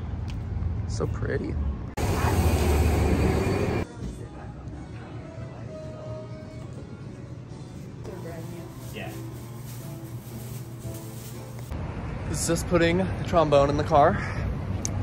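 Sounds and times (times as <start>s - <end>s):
loud street noise: 0.0s - 3.9s, 8.4s - 15.0s
music playing in a shop: 3.2s - 12.4s.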